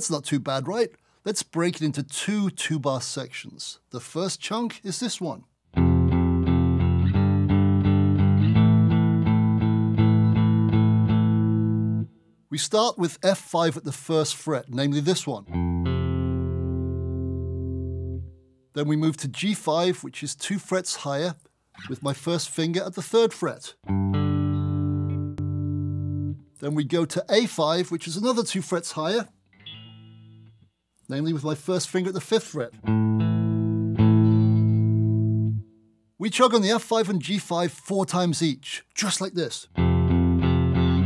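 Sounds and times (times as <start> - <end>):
electric guitar power chord ringing: 15.5 - 18.3, 23.9 - 26.4, 29.6 - 30.6.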